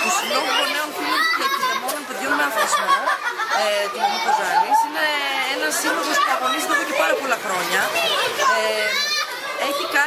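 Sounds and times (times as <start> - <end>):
woman speaking: 0.0 - 7.9
children's voices and chatter: 0.0 - 10.0.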